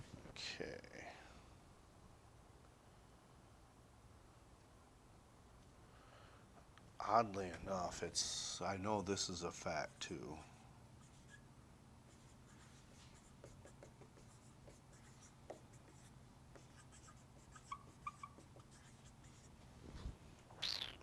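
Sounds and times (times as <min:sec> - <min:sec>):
marker squeaks: 0:11.0 - 0:11.4, 0:12.1 - 0:19.5, 0:20.6 - 0:21.0
marker writing on whiteboard: 0:12.1 - 0:19.6.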